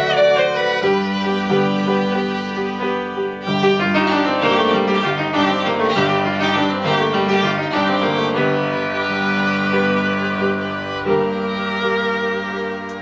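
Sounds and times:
piano playing: 0:00.0 - 0:13.0
violin and viola playing: 0:00.0 - 0:13.0.

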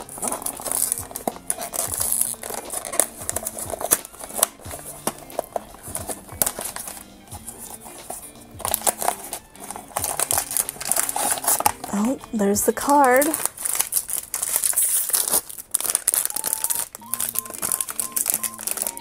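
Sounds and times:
cardboard box tearing open: 0:00.0 - 0:07.0, 0:08.6 - 0:12.1, 0:13.2 - 0:16.9
foil pouch crinkling: 0:00.0 - 0:19.0
quiet background music: 0:00.0 - 0:19.0.

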